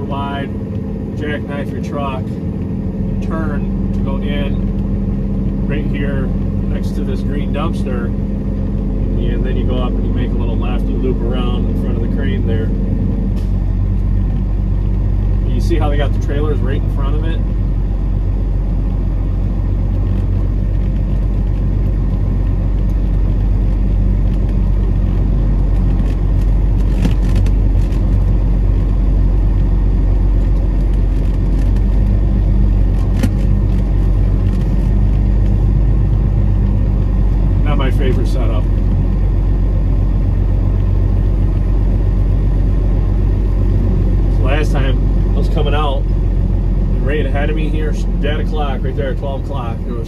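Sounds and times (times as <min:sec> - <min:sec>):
truck diesel engine droning: 0:00.0 - 0:50.0.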